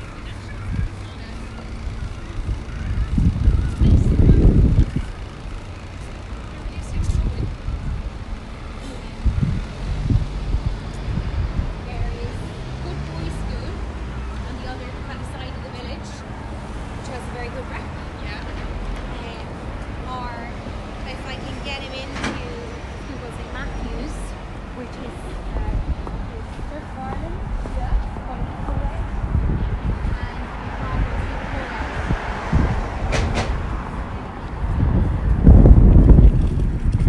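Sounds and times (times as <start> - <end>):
faint voices of passers-by: 0.0 - 37.0
low city rumble: 0.0 - 37.0
sharp knock: 33.1 - 33.6.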